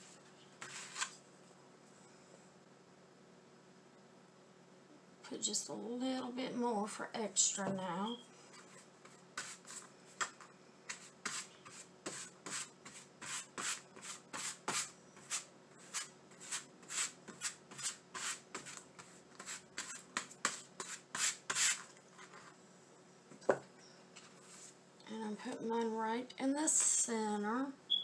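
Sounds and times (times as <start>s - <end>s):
paintbrush rubbing on canvas: 8.6s - 10.2s, 10.9s - 21.8s.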